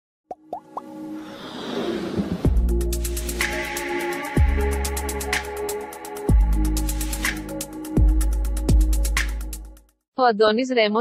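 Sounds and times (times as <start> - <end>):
whoosh: 1.1 - 3.5.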